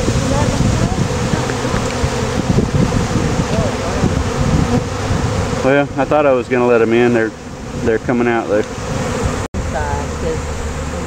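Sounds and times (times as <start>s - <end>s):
honey bees buzzing: 0.0s - 11.0s.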